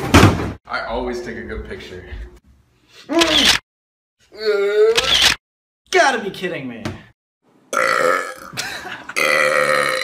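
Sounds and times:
cabinet door slamming: 0.0 - 0.6.

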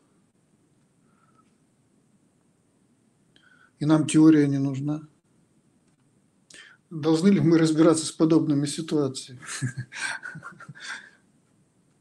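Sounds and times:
person speaking: 3.8 - 5.1, 6.5 - 11.1.

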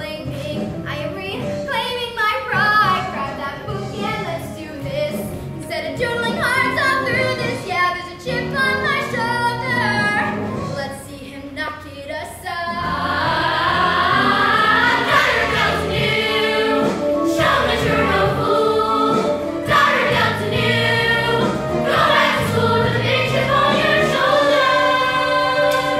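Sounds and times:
girls chorus singing: 12.7 - 25.9
instrumental accompaniment: 12.7 - 25.9.

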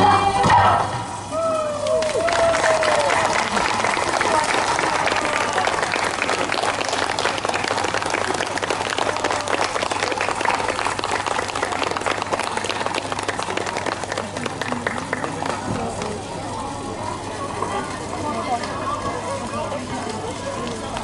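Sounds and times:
audience applauding: 1.7 - 16.4.

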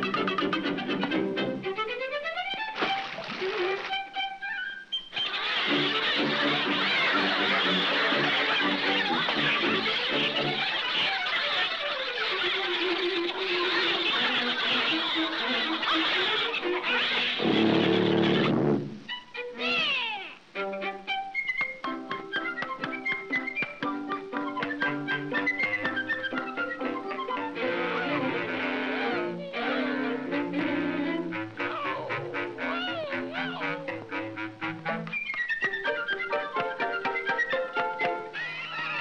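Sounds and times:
orchestral cartoon music: 0.0 - 39.0
high wailing cry: 19.6 - 20.4, 31.6 - 34.4, 38.3 - 39.0.

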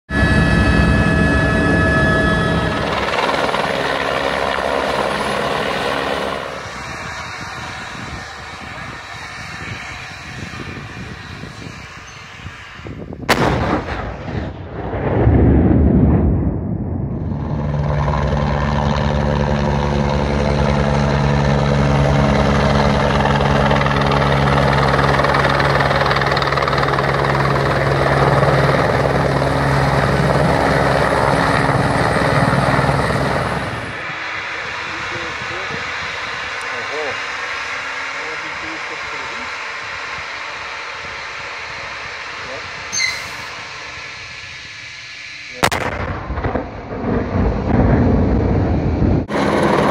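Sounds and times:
helicopter engine and rotors: 0.1 - 14.0, 16.4 - 49.9
helicopter rotor throb: 0.1 - 14.0, 15.3 - 49.9
explosion rumble: 13.2 - 18.3, 45.5 - 49.8
gas exploder bang: 13.3 - 17.2, 45.6 - 48.8.

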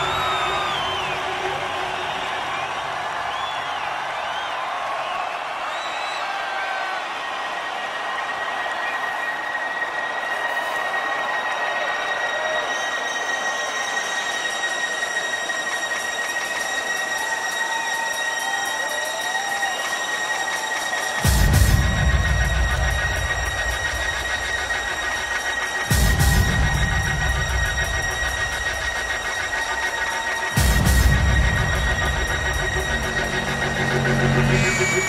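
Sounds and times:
crowd noise: 0.0 - 35.0.

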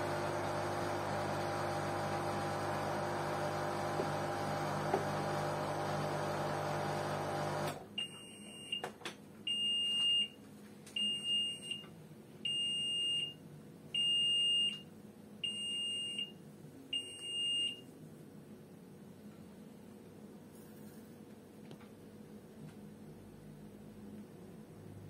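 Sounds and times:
washing machine running hum: 0.0 - 8.0
washing machine beeps: 0.0 - 8.9, 9.5 - 10.4, 11.0 - 13.4, 14.0 - 14.8, 15.4 - 17.9.

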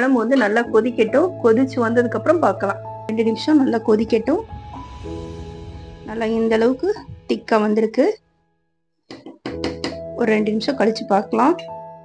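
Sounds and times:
background music with held notes: 0.0 - 7.6, 9.3 - 12.0
person talking: 6.1 - 8.2.

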